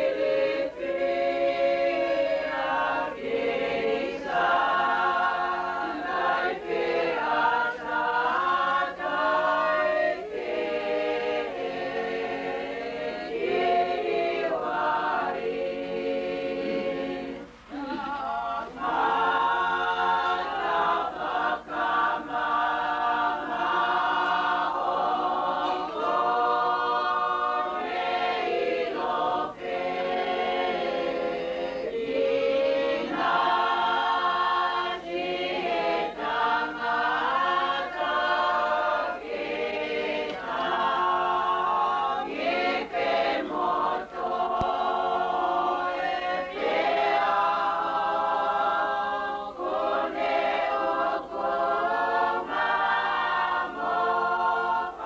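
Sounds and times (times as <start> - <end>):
choir singing a hymn unaccompanied: 0.0 - 55.0.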